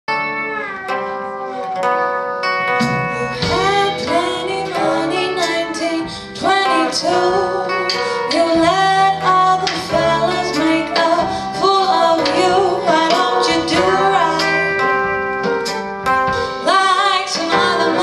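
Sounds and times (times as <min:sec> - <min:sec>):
blues band playing: 0:00.1 - 0:18.0
slide guitar: 0:00.1 - 0:18.0
woman singing: 0:03.2 - 0:15.0, 0:16.3 - 0:18.0.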